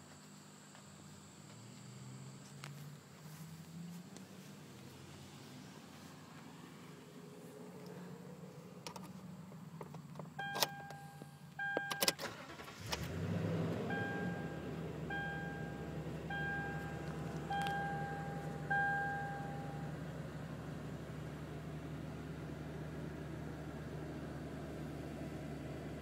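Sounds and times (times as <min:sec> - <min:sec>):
engine cranking and idling: 0:07.7 - 0:26.0
keys clicking in ignition: 0:09.8 - 0:13.1, 0:16.6 - 0:18.5
dashboard chime: 0:10.4 - 0:12.1, 0:13.9 - 0:19.9.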